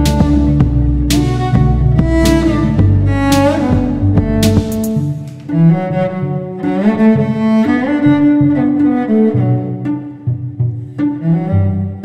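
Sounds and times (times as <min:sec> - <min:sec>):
bowed cello melody: 0:00.0 - 0:12.0
layered cello parts: 0:00.0 - 0:12.0.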